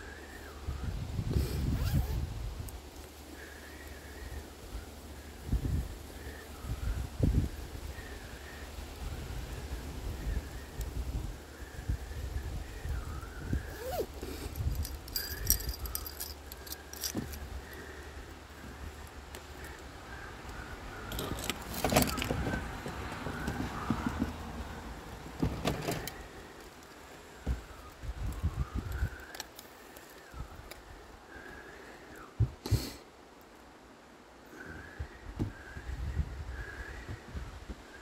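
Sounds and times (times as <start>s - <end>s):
small metal items jingling: 14.4s - 17.4s, 21.1s - 22.3s.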